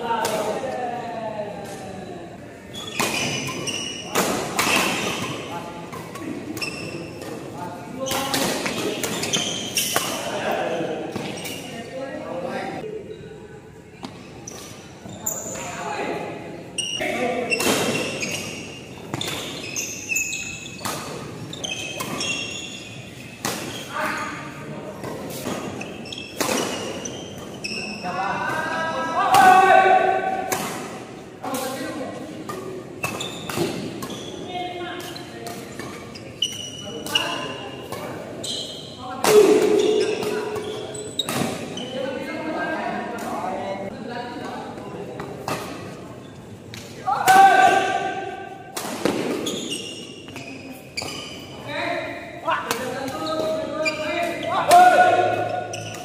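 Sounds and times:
players calling and shouting: 0:00.0 - 0:56.0
shoes squeaking on court: 0:02.7 - 0:12.2, 0:14.0 - 0:15.8, 0:16.8 - 0:28.6, 0:32.4 - 0:43.4, 0:47.8 - 0:52.2, 0:52.8 - 0:56.0.

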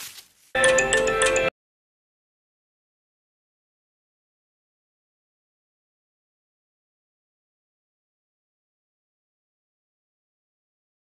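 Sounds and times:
electronic musical jingle: 0:00.6 - 0:01.5.

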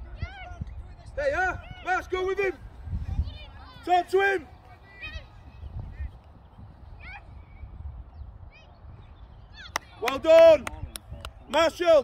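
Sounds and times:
wind rumble on microphone: 0:00.0 - 0:12.0.

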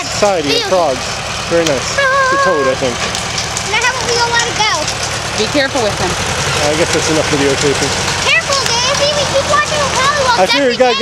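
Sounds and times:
dozer engine running: 0:00.0 - 0:11.0
high-pitched voice calling: 0:01.9 - 0:02.9.

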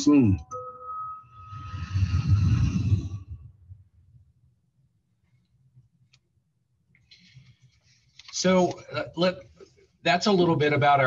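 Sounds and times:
held tone: 0:00.0 - 0:03.0.

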